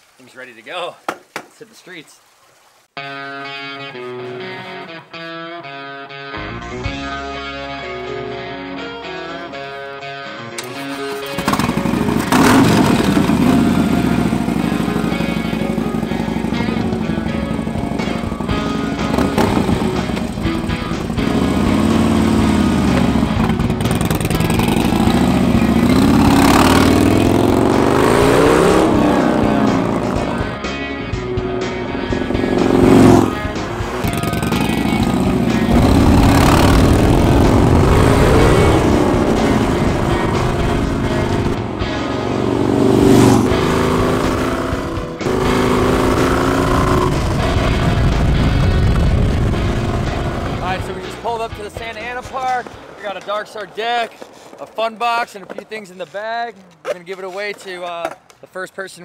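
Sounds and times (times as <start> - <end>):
background music: 3.0 - 53.8
motorcycle engine revving: 10.6 - 51.3.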